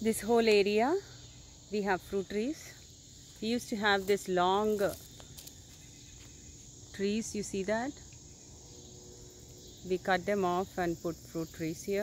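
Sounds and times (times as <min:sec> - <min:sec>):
insects chorus droning: 0:00.0 - 0:12.0.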